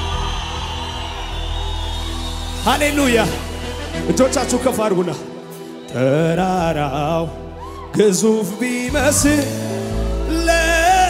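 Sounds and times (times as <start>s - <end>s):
worship band music: 0.0s - 11.0s.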